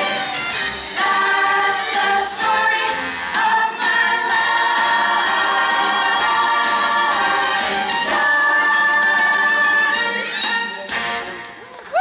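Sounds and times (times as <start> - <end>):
chorus singing: 0.0 - 10.3
musical accompaniment: 0.0 - 12.0.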